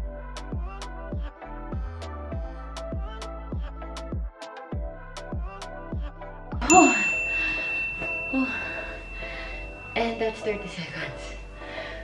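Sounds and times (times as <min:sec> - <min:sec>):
timer chime ding: 0:06.7 - 0:11.9.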